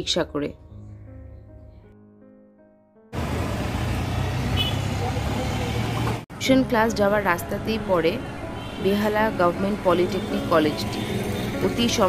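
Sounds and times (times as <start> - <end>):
road noise: 3.1 - 12.0
truck and scooters passing: 3.2 - 12.0.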